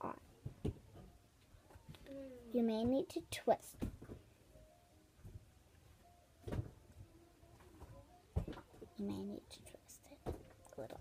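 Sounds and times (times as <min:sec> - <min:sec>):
quiet handling sounds: 0:00.4 - 0:02.2.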